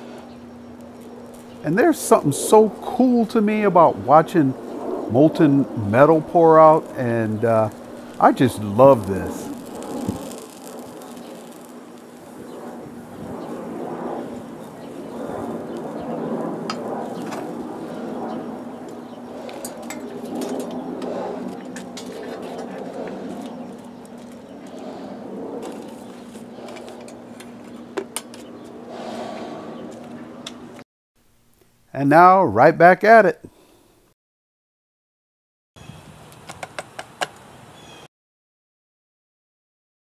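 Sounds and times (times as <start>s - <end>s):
air blower humming: 0.0s - 30.8s.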